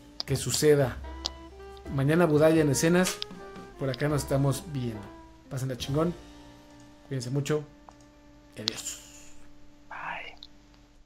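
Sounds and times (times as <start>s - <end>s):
faint steady hum: 0.0s - 11.0s
person whispering breathily: 8.8s - 10.4s.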